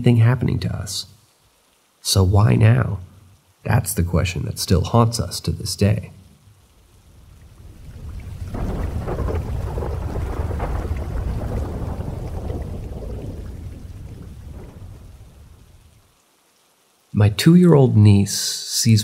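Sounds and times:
rain: 0:00.0 - 0:19.0
thunder rolling: 0:07.0 - 0:16.1.

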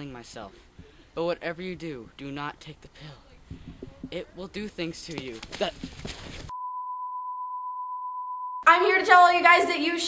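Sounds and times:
faint background hiss: 0:00.0 - 0:06.5.

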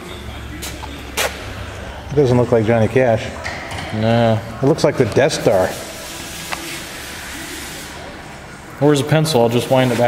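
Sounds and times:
man speaking: 0:02.0 - 0:05.8, 0:08.7 - 0:10.0.

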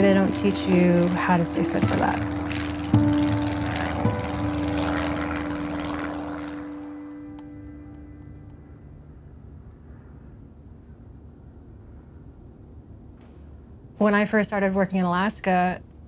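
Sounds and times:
propeller plane engine droning: 0:00.0 - 0:16.0.

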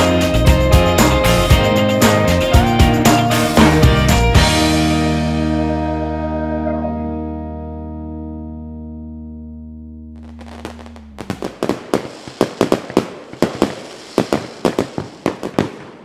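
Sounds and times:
song's held final chord: 0:03.6 - 0:11.7
fireworks banging: 0:10.2 - 0:16.0
fireworks crackling hiss: 0:10.2 - 0:16.0.

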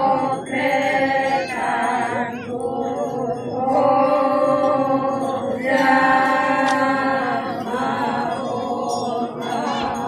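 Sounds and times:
group chanting in unison: 0:00.0 - 0:10.0.

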